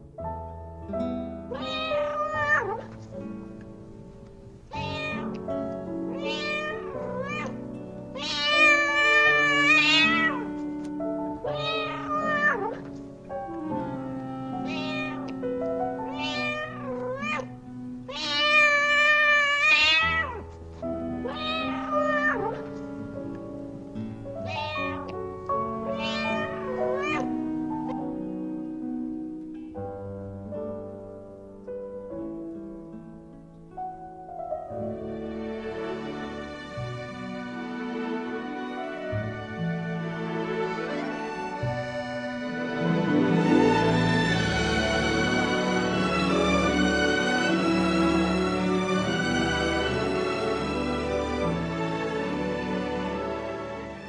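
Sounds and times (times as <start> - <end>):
cat meowing: 1.5 - 2.9, 4.7 - 5.4, 6.1 - 10.6, 11.4 - 13.0, 14.0 - 20.5, 21.1 - 22.8, 24.4 - 25.2, 25.8 - 27.5
held accompaniment notes: 3.0 - 18.8, 34.1 - 54.0.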